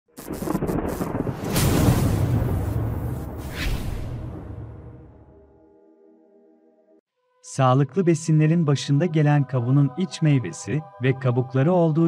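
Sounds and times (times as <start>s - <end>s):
thunder-like rumbling with crackling: 0.2s - 4.9s.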